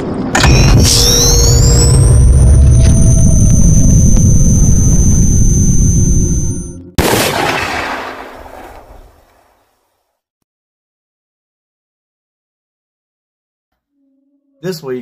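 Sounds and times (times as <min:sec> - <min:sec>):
heavy low rumble: 0:00.0 - 0:07.0
crashing boom: 0:00.4 - 0:06.0, 0:07.0 - 0:08.7
high rising screech: 0:00.4 - 0:06.8.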